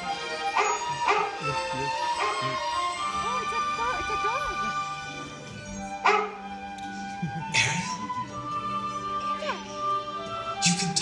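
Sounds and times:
orchestral music through speakers: 0.0s - 11.0s
dog barks: 0.5s - 1.5s, 2.2s - 2.6s, 6.0s - 6.4s.

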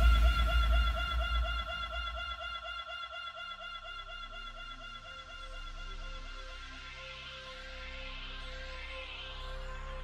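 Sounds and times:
heavy bass: 0.0s - 2.4s.

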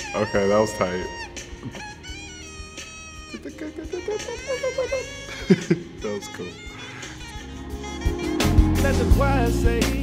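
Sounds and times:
quiet music with bending melody: 0.0s - 10.0s.

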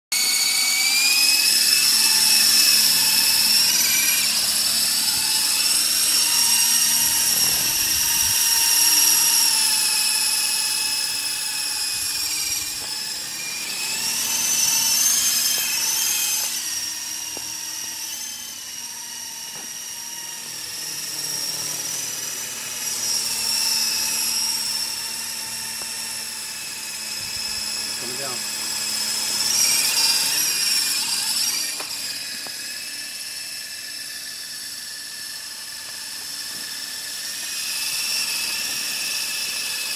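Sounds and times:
toy helicopter motor whine: 0.1s - 39.9s.

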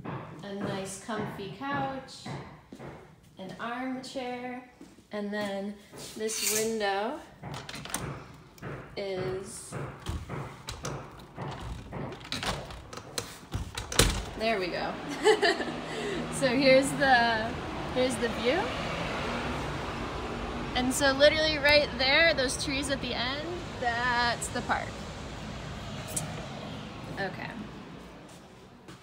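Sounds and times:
street traffic: 5.9s - 29.0s
window handle and frame rattling: 7.4s - 8.4s, 9.8s - 14.5s.

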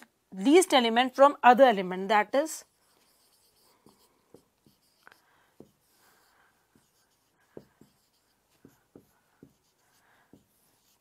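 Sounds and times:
marker writing on whiteboard: 2.6s - 11.0s.

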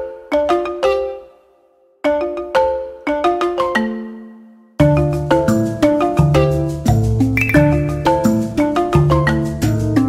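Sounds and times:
bell-like melody: 7.4s - 8.8s.

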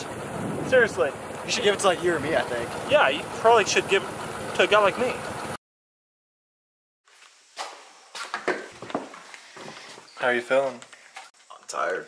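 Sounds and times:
knocks and rustles of movement: 7.1s - 12.0s.

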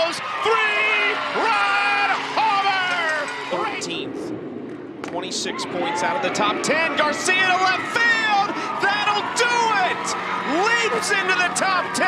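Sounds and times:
sports commentator talking: 0.0s - 4.1s, 5.0s - 12.0s.

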